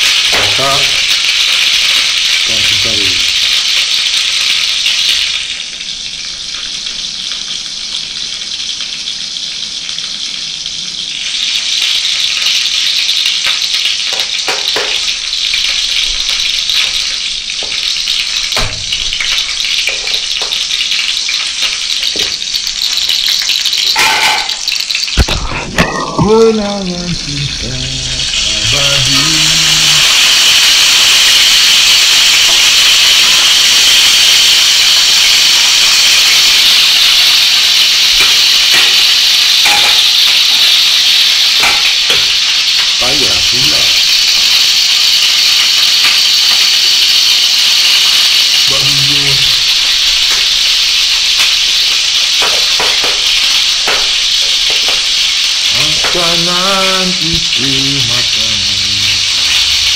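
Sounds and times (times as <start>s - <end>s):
fish frying in hot oil: 0.0s - 59.9s
knocks in wok: 18.5s - 19.3s.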